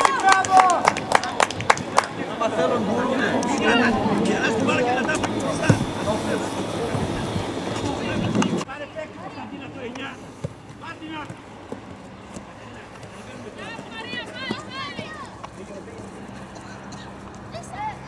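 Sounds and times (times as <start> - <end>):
voices calling and shouting: 0.0 - 18.0
ball being kicked: 5.2 - 6.0, 10.4 - 13.2.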